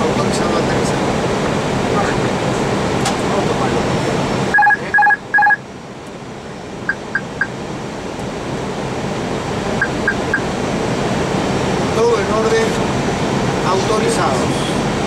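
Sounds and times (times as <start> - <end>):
cockpit air and engine noise: 0.0 - 15.0
short electronic beeps: 4.5 - 5.6, 6.9 - 7.5, 9.8 - 10.5.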